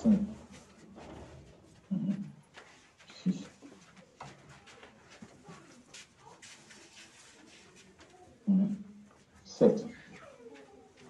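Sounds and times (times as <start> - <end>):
faint footsteps and shuffling: 0.0 - 11.0
low room noise: 0.0 - 11.0.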